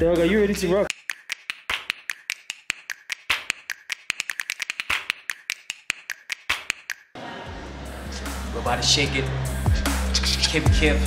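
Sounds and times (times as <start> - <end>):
rapid sharp clicks: 0.9 - 7.1.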